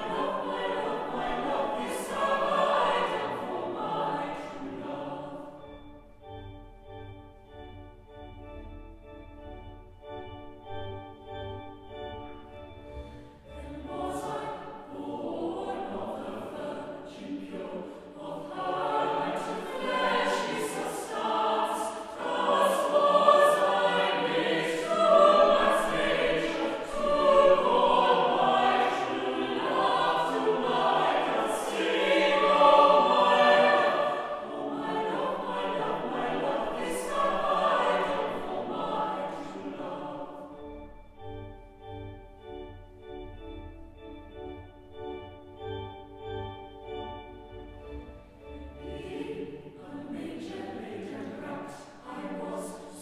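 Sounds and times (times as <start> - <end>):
choir singing a carol: 0.0 - 53.0.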